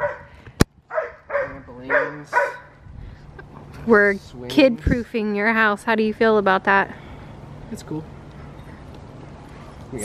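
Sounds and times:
dog barking: 0:00.0 - 0:00.3, 0:00.9 - 0:02.8.

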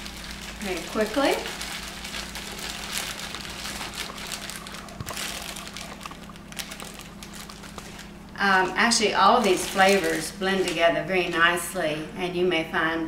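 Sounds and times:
plastic bag crinkling: 0:00.0 - 0:11.6.

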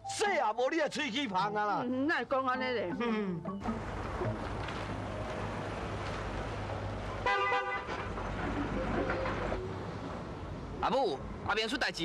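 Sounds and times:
car horn honk: 0:07.2 - 0:08.0.

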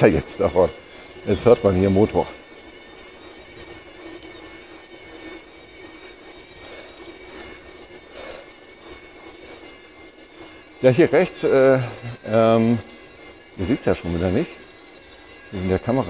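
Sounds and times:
birds chirping: 0:00.0 - 0:16.0
electric bicycle motor whine: 0:00.0 - 0:16.0.

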